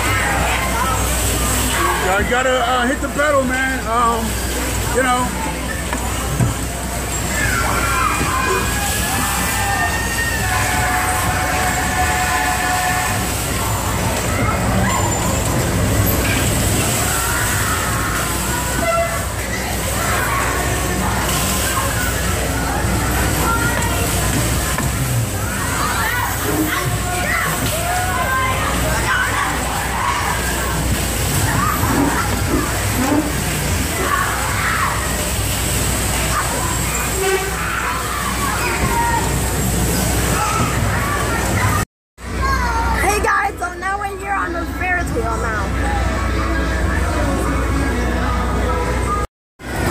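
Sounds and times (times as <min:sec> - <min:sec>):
bumper cars low rumble: 0:00.0 - 0:49.9.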